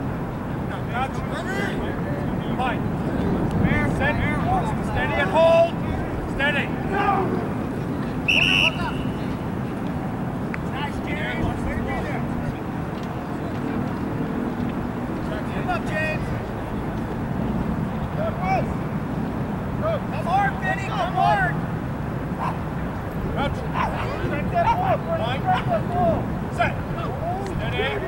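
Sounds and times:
wind rumble on microphone: 0.0s - 28.0s
distant shouts from players: 3.8s - 7.6s, 8.2s - 9.5s, 19.8s - 21.6s, 23.4s - 28.0s
referee's whistle blast: 8.3s - 9.2s.

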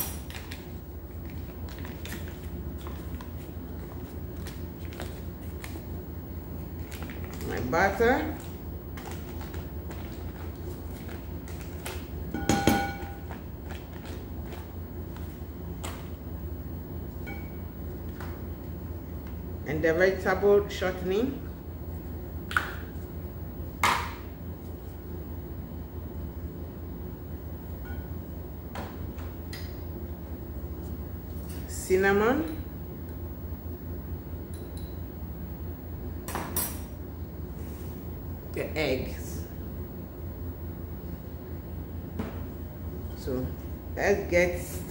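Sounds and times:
steady low hum: 0.0s - 44.9s.

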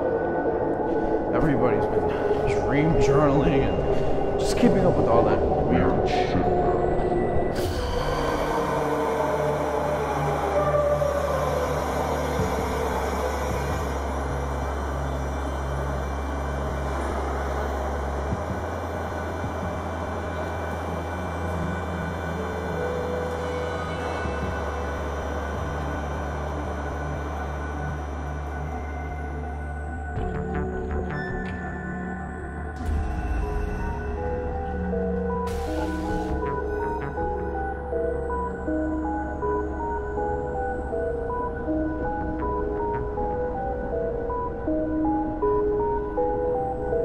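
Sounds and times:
subway train rumbling: 0.0s - 30.1s, 32.9s - 47.0s
eerie droning music: 0.0s - 47.0s.

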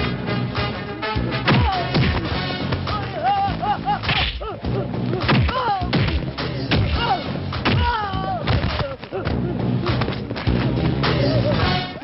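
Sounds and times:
cries and grunts: 3.0s - 10.0s.

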